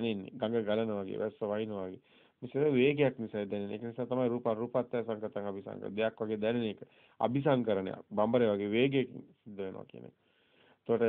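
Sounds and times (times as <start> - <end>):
man talking: 0.0 - 10.2.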